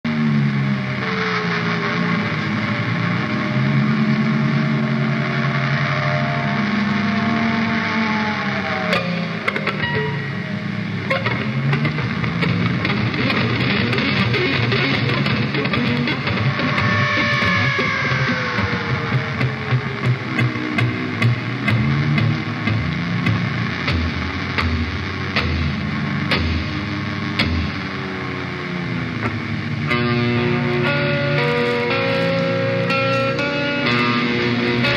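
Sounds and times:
distorted electric guitars: 0.0s - 34.9s
heavy metal band playing: 8.8s - 28.0s, 29.2s - 34.9s.

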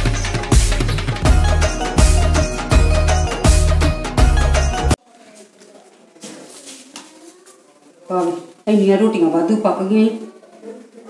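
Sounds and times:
cloth rustling: 5.1s - 8.6s.

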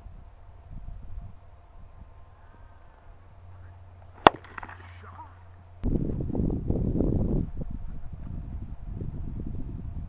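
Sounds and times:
cricket bat striking ball: 4.0s - 5.2s.

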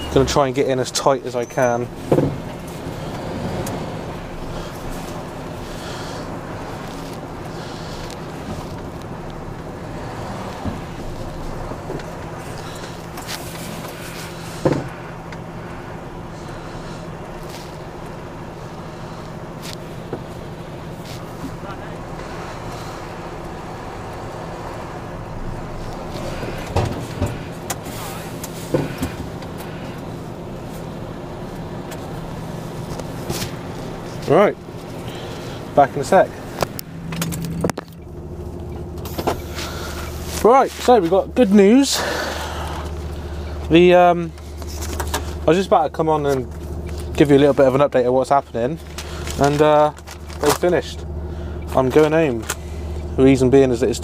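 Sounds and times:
diesel engine idling: 0.0s - 54.0s.

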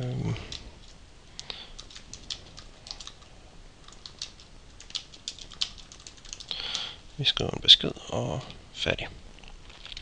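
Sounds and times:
typing on keyboard: 1.4s - 6.9s.

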